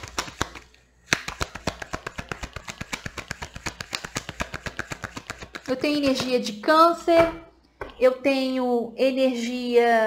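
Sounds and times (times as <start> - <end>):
cards being shuffled: 0.0 - 6.3.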